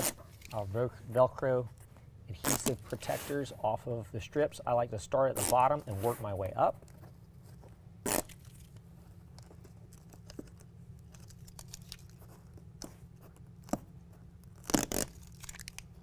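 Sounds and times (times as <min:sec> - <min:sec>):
velcro backing tearing: 0:00.0 - 0:00.6, 0:02.3 - 0:03.0, 0:08.0 - 0:08.8, 0:09.6 - 0:12.9, 0:13.6 - 0:16.0.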